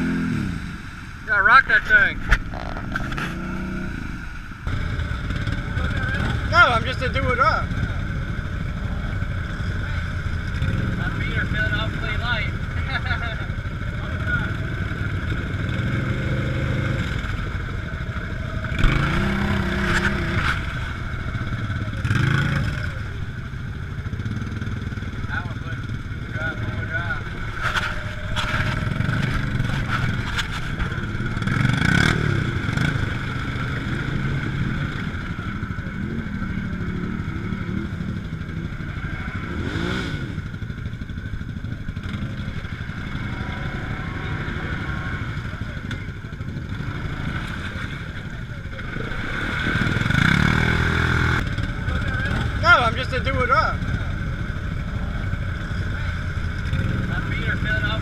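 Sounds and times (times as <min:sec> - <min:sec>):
off-road engines droning: 0:00.0 - 0:58.0.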